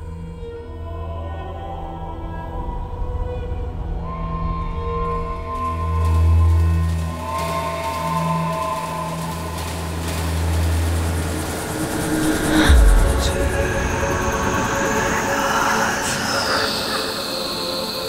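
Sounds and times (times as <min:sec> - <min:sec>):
low musical drone: 0:00.0 - 0:18.0
railway carriage rumbling on rails: 0:05.8 - 0:18.0
deep boom: 0:12.2 - 0:15.4.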